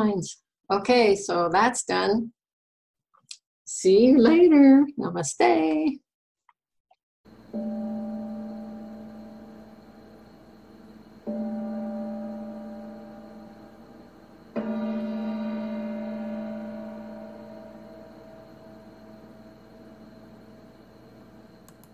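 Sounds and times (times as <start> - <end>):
gong-like ringing: 7.3 - 21.7.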